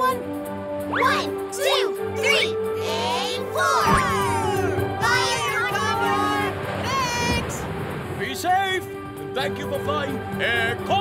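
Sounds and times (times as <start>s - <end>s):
background music: 0.0s - 11.0s
cartoon voices exclaiming: 0.9s - 7.5s.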